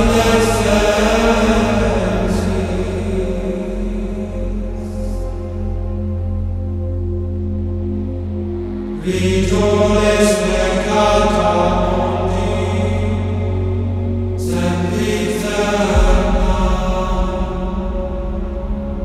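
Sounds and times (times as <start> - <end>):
chanted vocal music: 0.0 - 19.0
low drone: 0.0 - 19.0.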